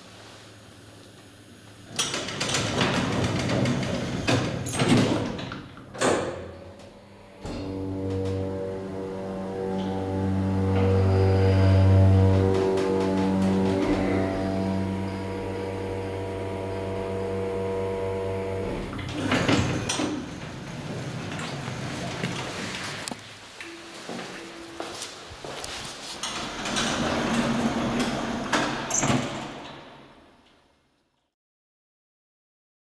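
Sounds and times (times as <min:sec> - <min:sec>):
elevator doors sliding: 0:01.8 - 0:30.3
hydraulic motor and pump humming: 0:06.0 - 0:21.5.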